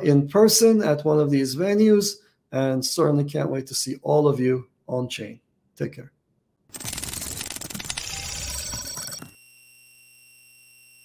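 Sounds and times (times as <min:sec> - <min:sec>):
glitchy digital static: 0:06.8 - 0:09.4
held electronic tone: 0:06.9 - 0:11.0.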